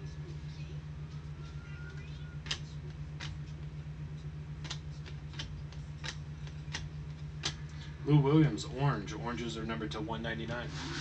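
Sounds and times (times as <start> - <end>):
low electrical hum: 0.0 - 11.0
cards sliding with crisp clicks: 4.6 - 7.9.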